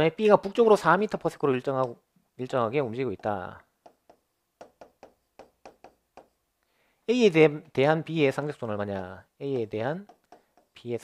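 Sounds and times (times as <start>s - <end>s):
pen tips tapping on glass screen: 1.3s - 2.0s, 3.1s - 6.4s, 8.4s - 10.8s.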